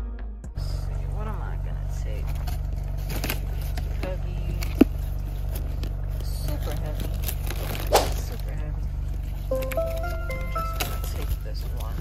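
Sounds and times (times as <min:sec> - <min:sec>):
car engine idling: 0:00.6 - 0:12.0
grocery bags rustling: 0:02.2 - 0:12.0.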